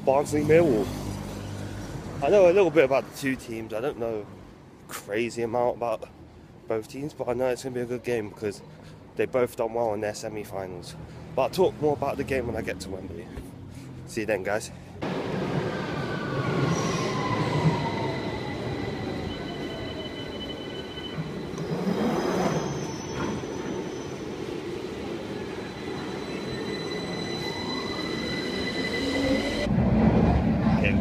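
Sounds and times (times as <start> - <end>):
moving train low rumble: 15.0 - 31.0
train whine changing pitch: 15.1 - 29.8
train wheels squealing: 15.7 - 29.7.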